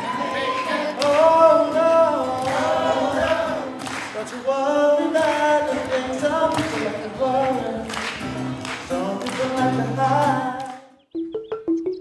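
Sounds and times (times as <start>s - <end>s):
a cappella group singing in harmony: 0.0s - 7.9s, 8.9s - 11.0s.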